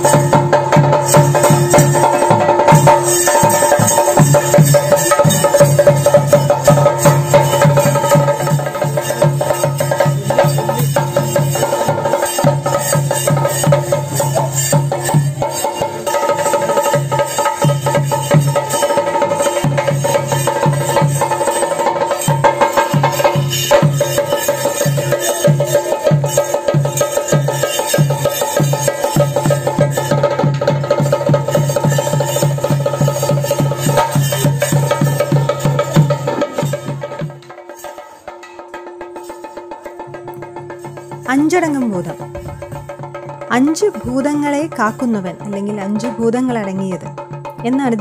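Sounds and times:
drums beaten in fast rhythm: 0:00.0 - 0:48.0.

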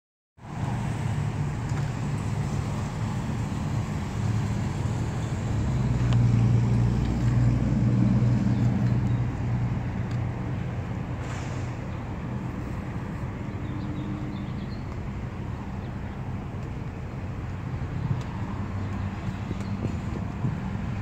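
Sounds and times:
road vehicles humming: 0:00.4 - 0:21.0.

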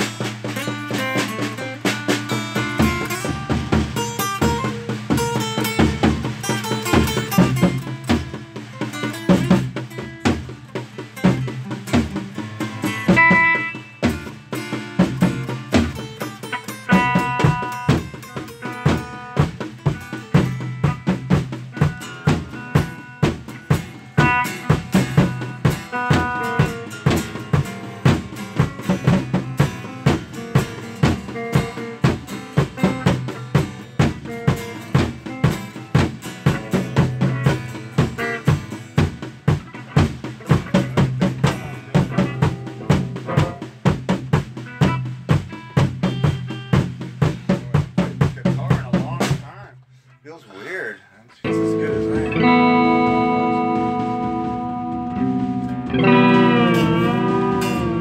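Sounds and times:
drum kit fast beat: 0:00.0 - 0:49.8, 0:51.5 - 0:58.0
guitar: 0:00.0 - 0:58.0
bass note: 0:51.5 - 0:58.0.

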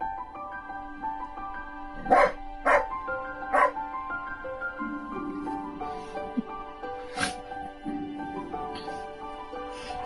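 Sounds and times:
background music: 0:00.0 - 0:10.0
dog barking: 0:02.0 - 0:02.9, 0:03.5 - 0:03.8.

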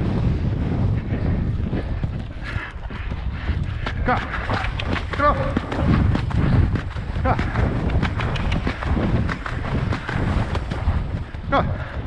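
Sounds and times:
horse hoofbeats: 0:00.0 - 0:12.0
wind buffeting microphone: 0:00.0 - 0:12.0.

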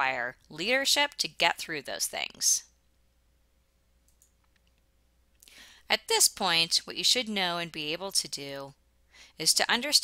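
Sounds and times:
person speaking: 0:00.0 - 0:02.8
faint clicks: 0:04.0 - 0:05.5
soft breath in: 0:05.4 - 0:05.9.

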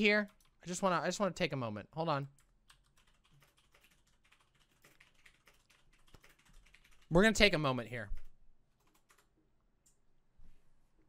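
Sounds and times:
keyboard and mouse clicking: 0:02.4 - 0:07.1, 0:08.8 - 0:10.0.

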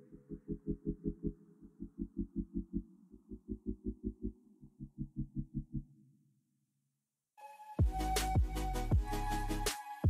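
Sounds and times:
muffled music with pulsing beat: 0:07.8 - 0:10.0.

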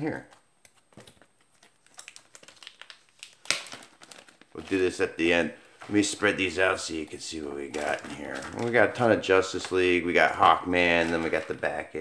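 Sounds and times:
paper rustling: 0:05.6 - 0:06.5, 0:07.6 - 0:12.0.

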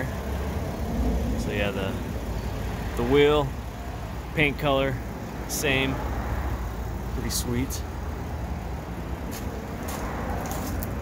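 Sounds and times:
low rumble of vehicles: 0:00.0 - 0:11.0.

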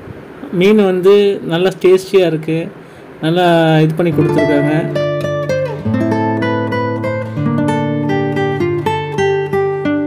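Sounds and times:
plucked acoustic guitar: 0:04.1 - 0:10.0.

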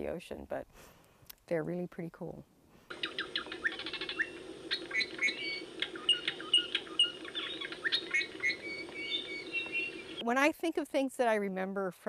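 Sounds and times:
steady low hum: 0:02.6 - 0:10.2
birds chirping: 0:02.9 - 0:10.2.

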